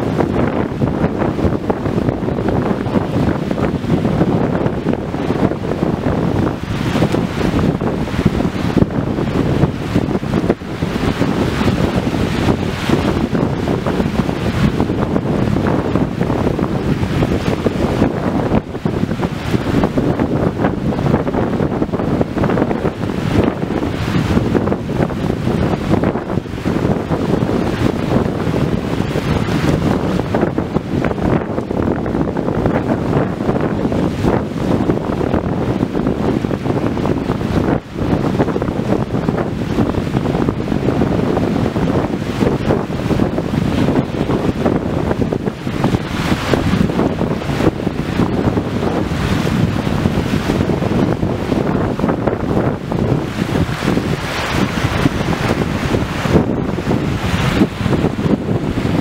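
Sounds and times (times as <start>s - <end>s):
ocean waves washing: 0.0s - 59.0s
wind buffeting microphone: 0.0s - 59.0s.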